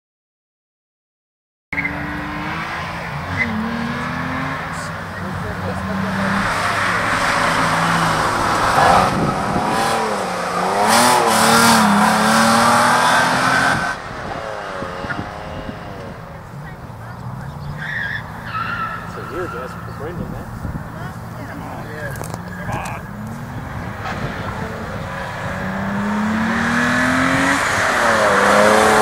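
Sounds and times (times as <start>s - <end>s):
car engine revving: 1.8s - 29.0s
tyres squealing: 15.9s - 29.0s.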